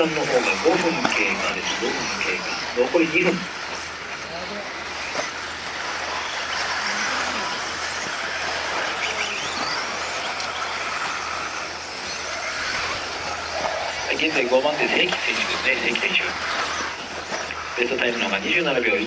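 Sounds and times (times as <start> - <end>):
motors and tyres hissing on dirt: 0.0 - 19.0
rising motor whines: 0.0 - 19.0.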